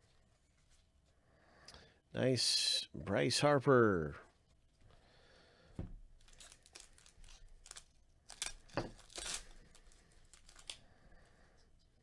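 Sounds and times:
card pack wrappers crinkling: 0:06.2 - 0:10.9.

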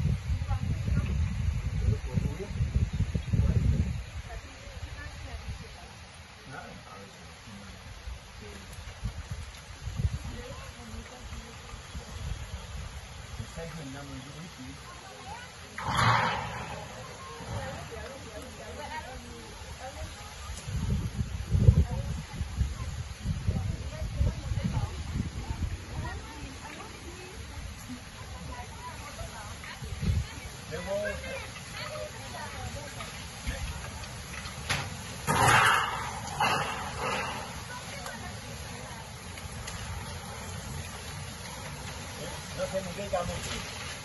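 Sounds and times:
wind buffeting microphone: 0:00.0 - 0:05.9, 0:07.8 - 0:13.8, 0:15.0 - 0:44.0
loud rush of noise: 0:15.7 - 0:18.5, 0:35.1 - 0:44.0.

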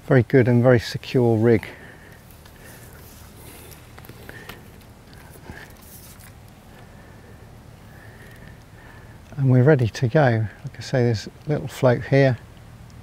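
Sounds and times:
microphone handling clicks and rustles: 0:01.2 - 0:06.9.

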